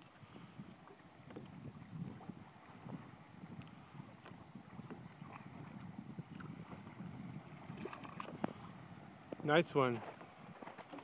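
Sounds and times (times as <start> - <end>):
small knocks against boat: 9.3 - 11.0.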